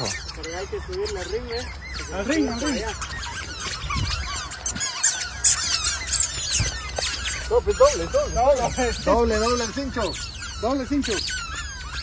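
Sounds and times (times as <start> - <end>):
rubber chicken toys squeaking: 0.0 - 12.0.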